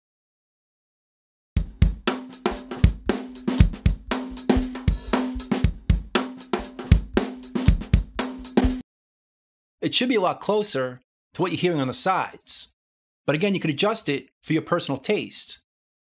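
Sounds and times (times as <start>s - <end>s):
drum kit loop: 1.6s - 8.8s.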